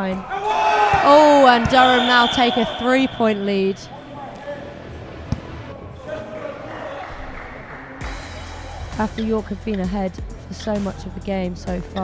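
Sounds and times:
faint players' voices: 0:00.0 - 0:09.1.

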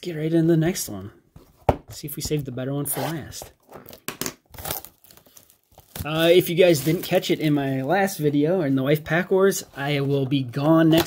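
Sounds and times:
packaging crinkling and tearing: 0:03.6 - 0:07.9.

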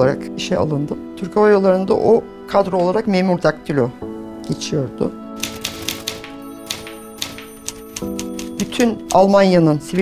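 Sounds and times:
soft background music: 0:00.0 - 0:10.0
typewriter keys clacking: 0:05.4 - 0:10.0.

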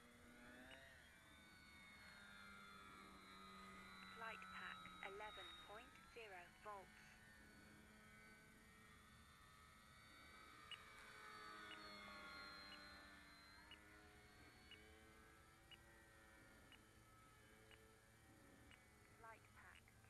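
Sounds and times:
model plane motor whine: 0:00.0 - 0:20.0.

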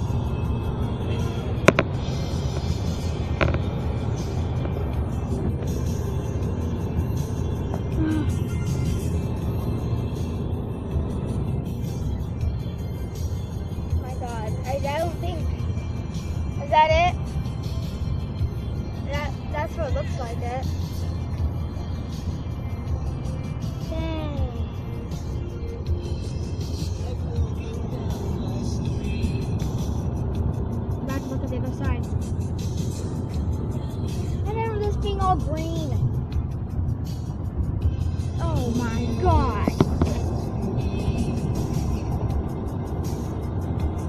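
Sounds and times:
car road noise rumble: 0:00.0 - 0:44.0
music playing: 0:00.0 - 0:44.0.

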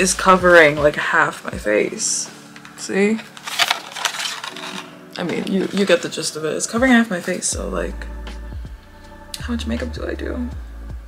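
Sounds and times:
plastic mask clicks and rustles: 0:02.5 - 0:06.0.

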